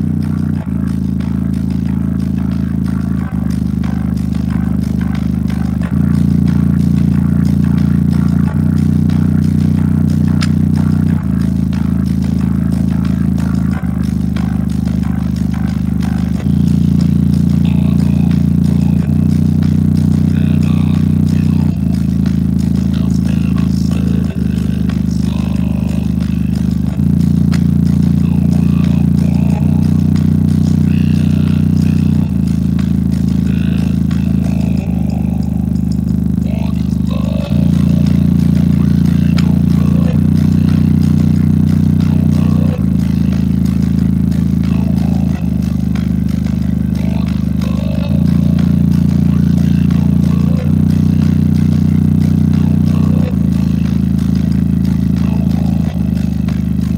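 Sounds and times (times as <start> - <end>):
deep bass notes from speaker: 0.0 - 56.9
rattling buzz: 0.0 - 56.9.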